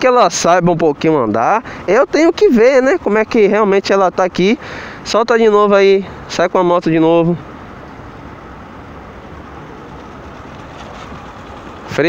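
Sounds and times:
outdoor noise: 0:00.0 - 0:12.0
motorcycle engine running: 0:08.8 - 0:12.0.

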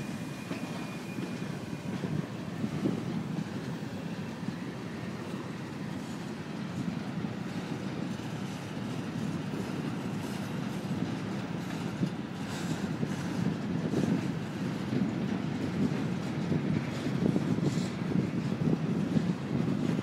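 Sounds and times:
freight train wheels rumbling on rail: 0:00.0 - 0:20.0.

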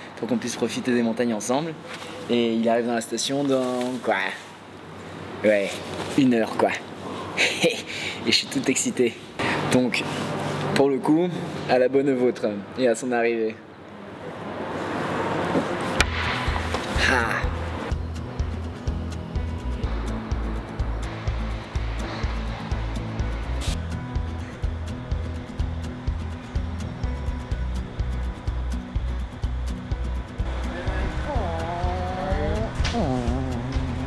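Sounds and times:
music with bass beat: 0:16.0 - 0:34.0.

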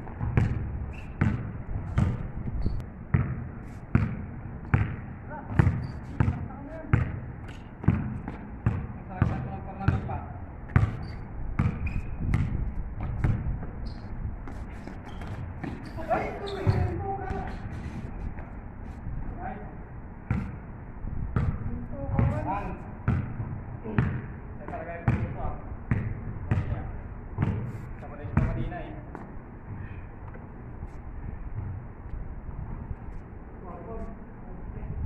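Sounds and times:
basketball bouncing on pavement: 0:00.0 - 0:17.5, 0:20.2 - 0:20.6, 0:21.3 - 0:30.4.

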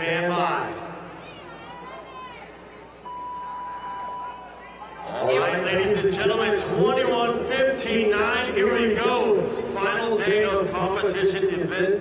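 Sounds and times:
electronic beep tone: 0:03.0 - 0:04.4.

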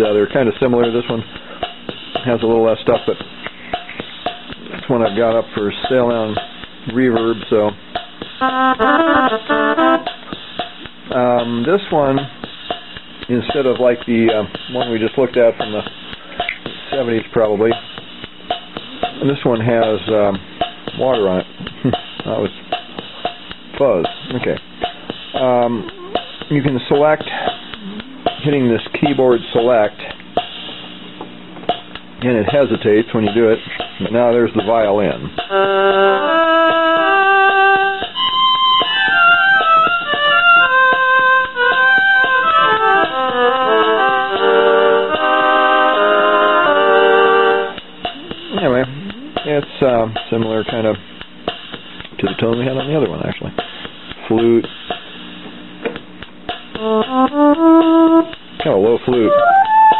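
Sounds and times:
keyboard low held tone: 0:08.4 - 0:10.1, 0:25.7 - 0:26.3, 0:59.2 - 0:59.9
keyboard flute tone: 0:08.4 - 0:10.2, 0:25.7 - 0:26.4, 0:35.5 - 0:49.5, 0:56.8 - 0:58.4, 0:59.2 - 0:59.9.

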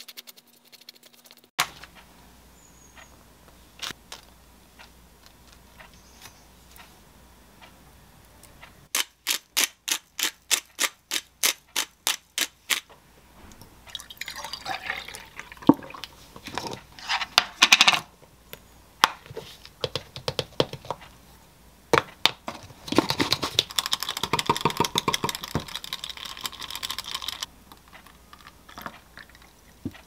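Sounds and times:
liquid pouring into glass: 0:13.9 - 0:16.1
pepper mill grinding: 0:23.3 - 0:29.4.

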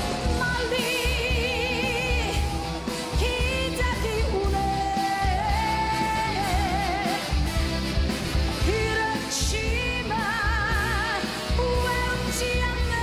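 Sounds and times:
backing band: 0:00.0 - 0:13.0
woman singing pop song: 0:00.1 - 0:07.4, 0:08.6 - 0:13.0.

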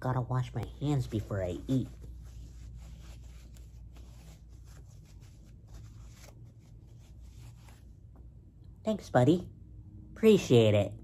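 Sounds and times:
low steady hum: 0:00.0 - 0:11.0
paper tissue rustling between hands: 0:00.4 - 0:08.1.

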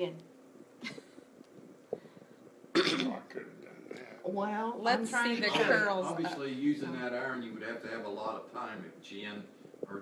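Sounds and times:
person coughing: 0:02.8 - 0:03.2.

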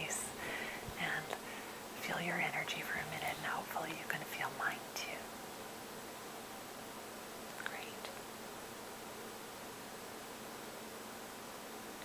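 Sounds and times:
background recording hiss: 0:00.0 - 0:12.0.

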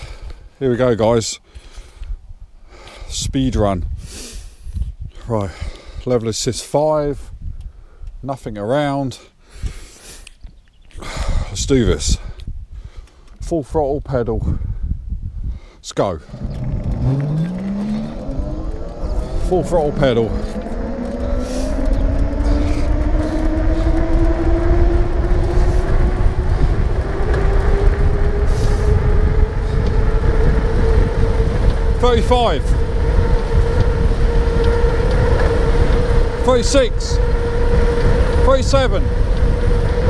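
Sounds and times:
wind buffeting microphone: 0:00.0 - 0:08.2, 0:09.5 - 0:40.0
low rumble: 0:16.2 - 0:40.0
electric motor whining: 0:16.3 - 0:40.0.

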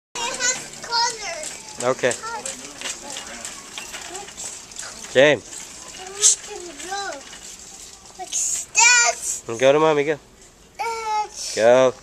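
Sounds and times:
child making high-pitched calls: 0:08.8 - 0:09.4.

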